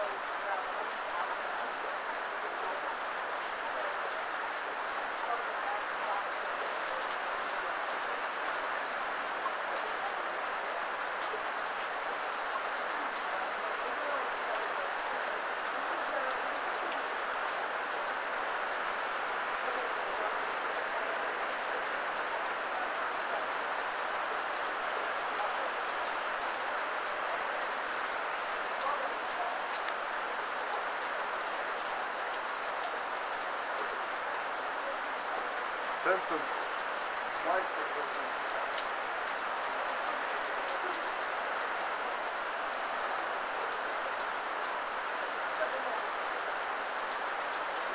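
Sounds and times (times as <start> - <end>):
heavy rain on pavement: 0.0 - 47.9.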